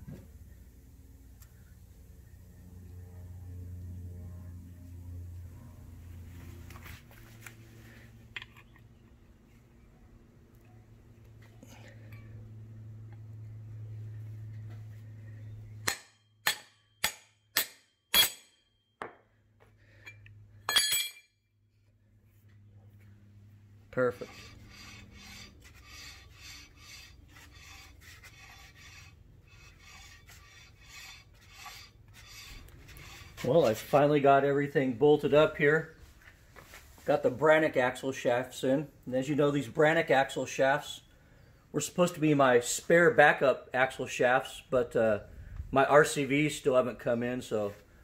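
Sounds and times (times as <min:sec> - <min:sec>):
ringing metal clang: 0:15.8 - 0:18.8, 0:20.1 - 0:21.4.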